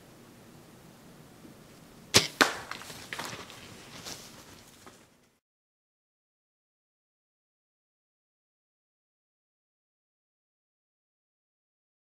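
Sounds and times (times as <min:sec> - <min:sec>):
arrow hitting: 0:02.1 - 0:03.3
animal crashing through brush: 0:02.2 - 0:05.1.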